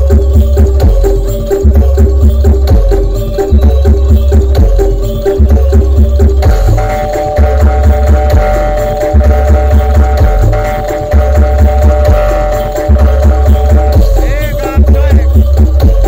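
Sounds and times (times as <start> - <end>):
deep drum beats: 0.0 - 16.0.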